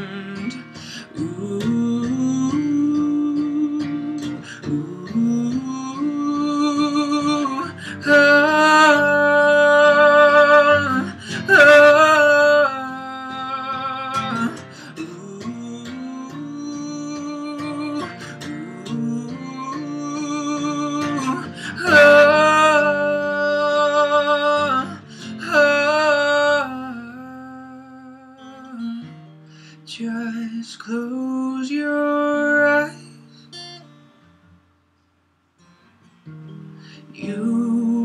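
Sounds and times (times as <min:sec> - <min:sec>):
man singing long notes: 0:00.0 - 0:28.8
acoustic guitar strumming: 0:00.0 - 0:38.0.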